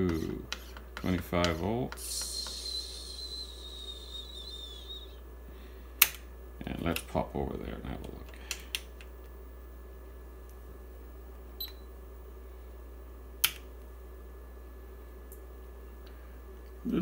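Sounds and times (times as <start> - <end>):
low mains hum: 0.0 - 17.0.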